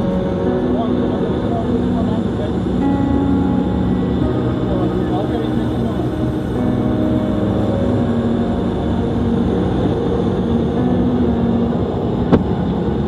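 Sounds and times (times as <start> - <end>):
low drone: 0.0 - 13.0.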